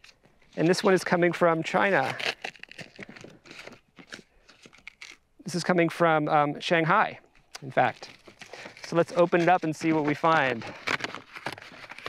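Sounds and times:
envelope rustling and crinkling: 0.0 - 5.3, 7.4 - 12.0.

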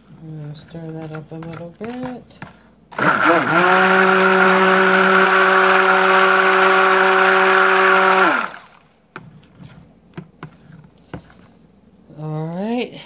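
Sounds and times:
stick blender motor whine: 2.9 - 8.7.

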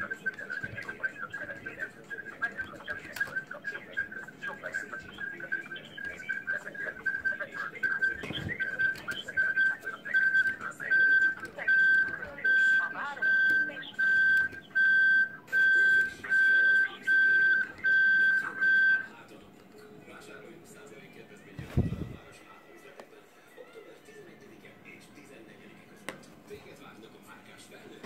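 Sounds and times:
phone beeping high tone: 2.9 - 19.1.

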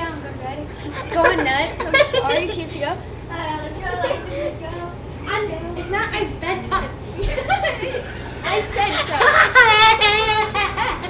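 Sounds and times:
girls' voices protesting: 0.7 - 11.0.

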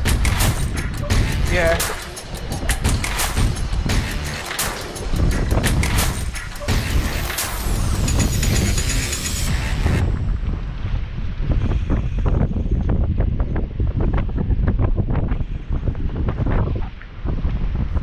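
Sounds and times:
sea surf washing against rocks: 0.0 - 6.8
wind buffeting microphone: 0.0 - 18.0.

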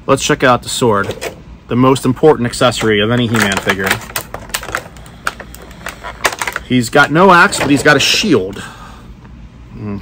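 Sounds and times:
plastic toy clicks and rattles: 3.2 - 6.7.

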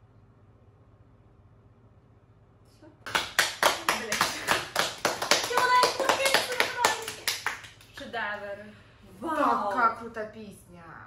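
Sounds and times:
people clapping: 3.0 - 8.5.

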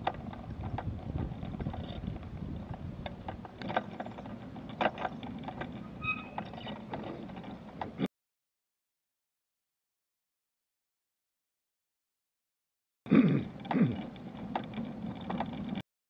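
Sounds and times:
clicks and rattles: 0.0 - 8.0, 13.6 - 15.8
scooter wheels and motor rumbling: 0.0 - 8.1, 13.3 - 15.8.

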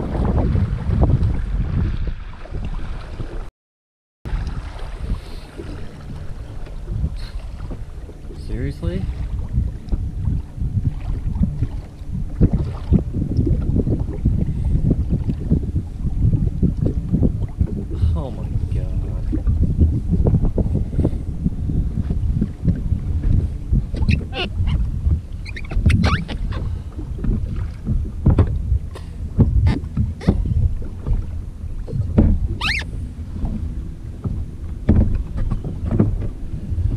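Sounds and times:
choppy water: 0.0 - 3.5, 4.3 - 36.9
hull slapping on waves: 0.0 - 3.5, 4.3 - 36.9
personal watercraft running: 0.0 - 3.5, 4.3 - 36.9
wind buffeting microphone: 0.0 - 3.5, 4.3 - 36.9.

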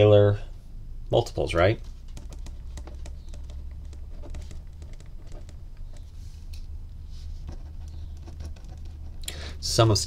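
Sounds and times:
low steady hum: 0.0 - 10.0
pen writing on paper: 2.2 - 6.1, 7.5 - 9.2.

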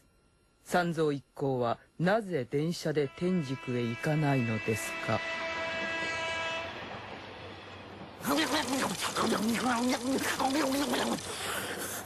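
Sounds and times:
held tone: 2.8 - 5.2
train carriage running: 3.2 - 11.4.

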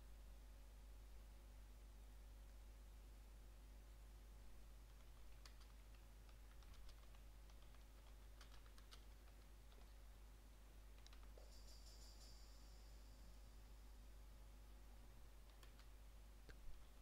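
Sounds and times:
typing on keyboard: 4.8 - 10.0, 10.9 - 12.5, 15.4 - 16.0.

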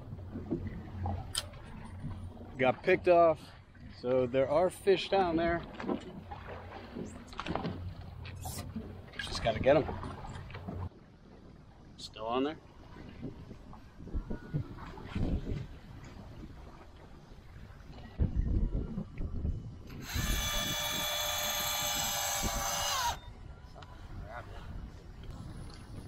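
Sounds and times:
low thumps and rumbles: 0.0 - 3.1
electric fishing reel motor whining: 19.9 - 23.2.

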